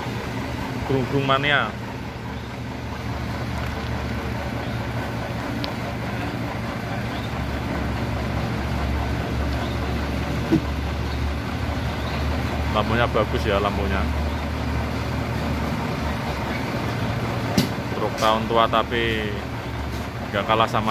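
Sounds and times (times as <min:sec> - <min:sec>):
diesel truck engine droning: 0:00.0 - 0:20.9.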